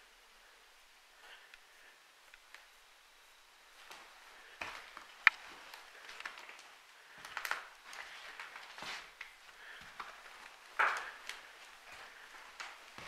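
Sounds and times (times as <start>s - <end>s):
footsteps on debris: 3.8s - 13.0s.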